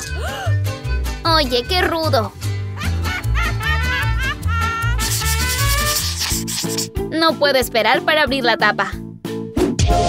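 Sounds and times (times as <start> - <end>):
background music: 0.0 - 10.0
scratchy brush-stroke sound effect: 5.0 - 7.0.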